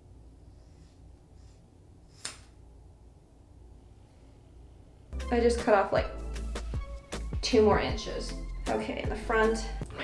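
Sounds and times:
scissors cutting hair: 0:02.1 - 0:02.5.

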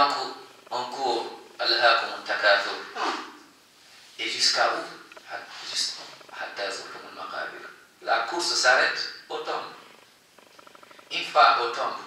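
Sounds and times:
man speaking: 0:00.0 - 0:03.3, 0:04.2 - 0:09.9, 0:11.1 - 0:12.0.

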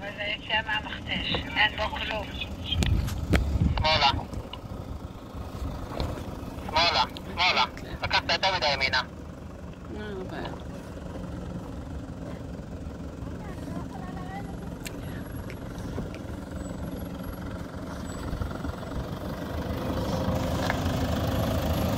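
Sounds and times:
suv engine running at low revs: 0:00.0 - 0:21.9.

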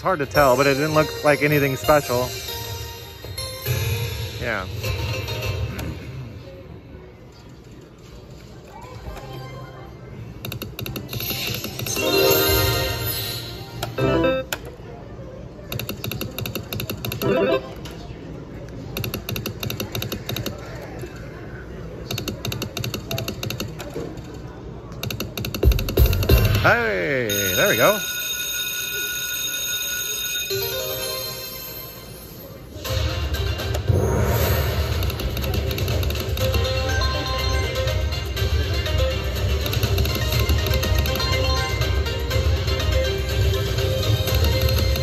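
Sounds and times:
slot machine electronic ticking: 0:00.0 - 0:05.9, 0:10.4 - 0:14.7, 0:15.8 - 0:17.9, 0:25.2 - 0:45.0
held ringing chime: 0:27.3 - 0:32.7.

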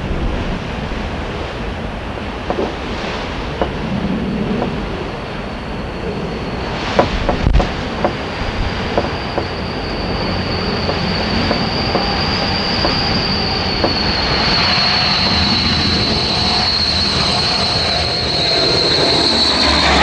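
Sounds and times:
turboprop engines whining: 0:00.0 - 0:20.0.

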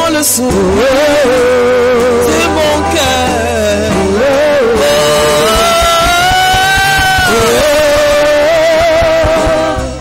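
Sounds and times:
band accompaniment with steady beat: 0:00.0 - 0:10.0
woman singing high note: 0:02.2 - 0:05.6.

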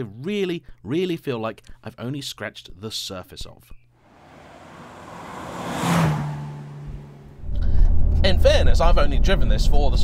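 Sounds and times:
small car driving past: 0:04.1 - 0:07.6.

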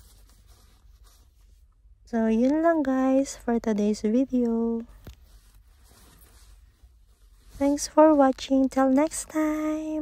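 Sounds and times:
handbag rustling: 0:05.2 - 0:08.9.

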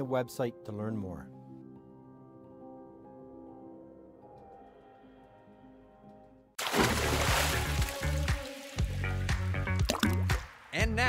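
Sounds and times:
water splash sound effect: 0:06.6 - 0:09.0, 0:09.7 - 0:10.7
music with deep bass and drums: 0:07.5 - 0:11.0.

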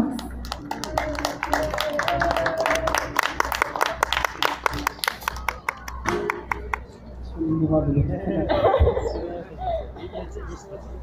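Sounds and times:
sharp claps: 0:00.1 - 0:06.9.

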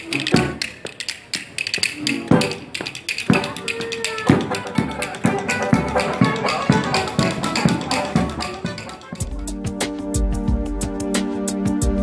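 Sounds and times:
sharp percussive taps: 0:00.0 - 0:09.3
banjo: 0:02.0 - 0:09.7
upright bass: 0:04.3 - 0:12.0.

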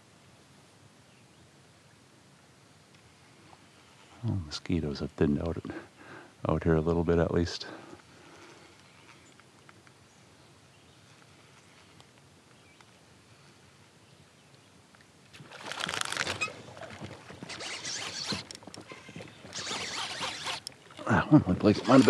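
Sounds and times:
faint lake ambience: 0:00.0 - 0:22.0
fish splashing at water surface: 0:15.4 - 0:18.2.

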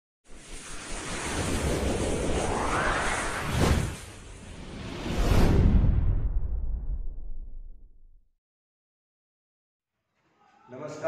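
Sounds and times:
whooshing title intro: 0:00.3 - 0:07.9.

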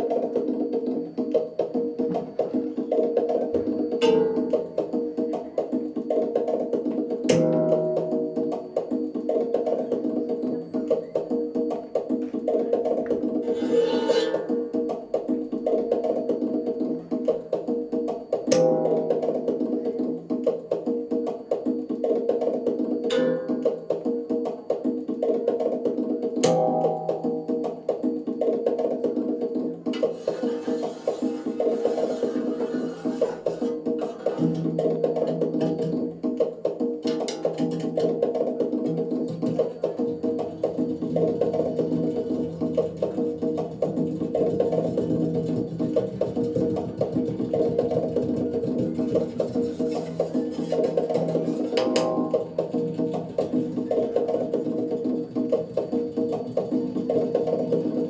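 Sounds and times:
stick knocking on fan blades: 0:17.1 - 0:57.9.

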